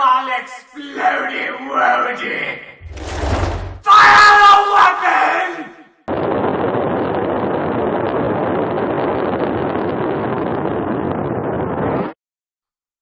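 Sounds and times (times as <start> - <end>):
loud rough rushing beam: 2.8 - 3.9.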